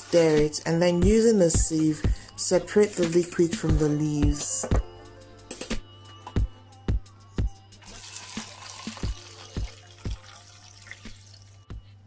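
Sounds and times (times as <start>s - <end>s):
liquid splashing into a jug: 7.8s - 11.6s.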